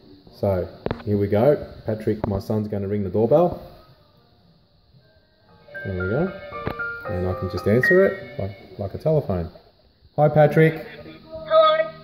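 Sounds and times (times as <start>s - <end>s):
intercom chime ringtone: 5.7s - 8.6s.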